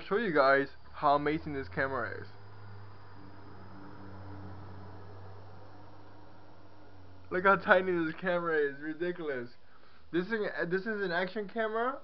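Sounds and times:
low hum: 0.0s - 9.8s.

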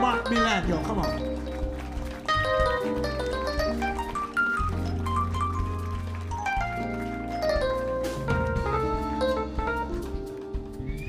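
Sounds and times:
keyboard piano runs: 0.0s - 11.0s
live band music: 0.0s - 11.0s.

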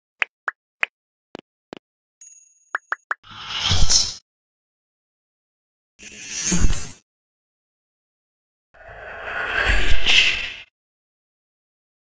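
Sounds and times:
cartoon pops and clicks: 2.7s - 3.2s.

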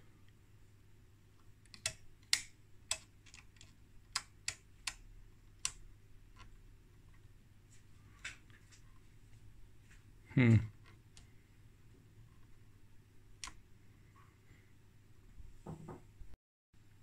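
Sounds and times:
switches clicking: 1.6s - 5.0s, 5.6s - 5.8s.

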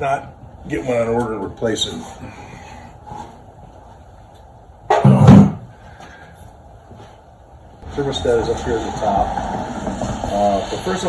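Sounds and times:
faint footsteps: 5.7s - 7.6s.

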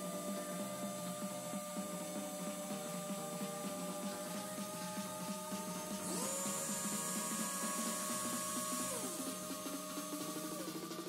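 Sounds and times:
background music: 0.0s - 11.0s
electric motor whining: 0.0s - 11.0s.

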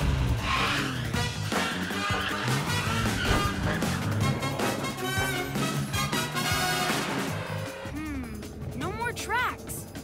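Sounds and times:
action score music: 0.0s - 10.0s.

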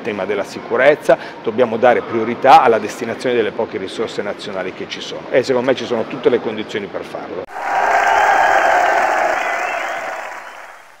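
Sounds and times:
crowd applause and cheering: 7.5s - 11.0s.

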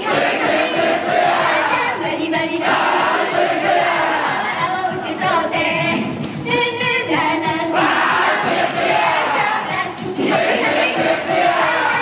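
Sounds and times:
fans shouting along: 0.0s - 4.5s, 7.7s - 12.0s
girl group singing pop song: 0.0s - 12.0s.

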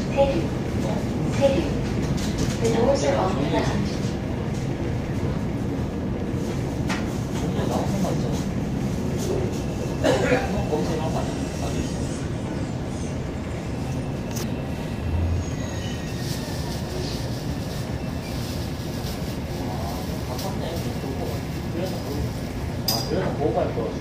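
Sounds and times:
electric train rumbling: 0.0s - 24.0s
train whining tones: 10.7s - 18.5s.

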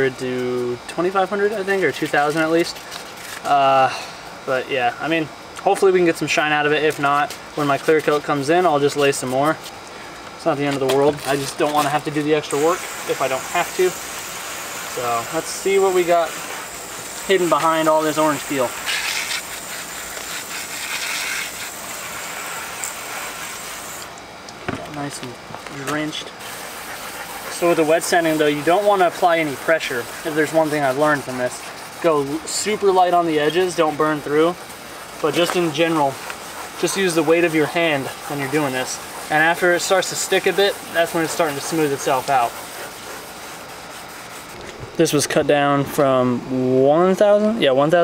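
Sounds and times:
sanding block rubbing wet paint: 0.0s - 3.5s, 5.7s - 9.7s, 10.5s - 24.1s, 25.8s - 45.2s
water spray hissing: 11.2s - 24.1s, 25.9s - 44.6s.

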